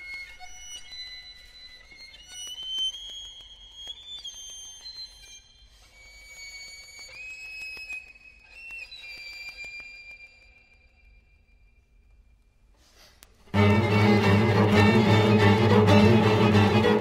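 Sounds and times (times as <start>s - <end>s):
string trio playing: 13.5s - 17.0s.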